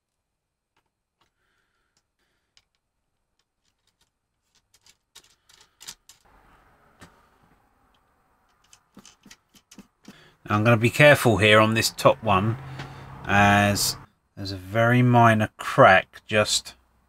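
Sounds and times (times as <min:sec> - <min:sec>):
metal bolts and nuts clicking: 0:02.0 - 0:06.3, 0:07.9 - 0:10.1.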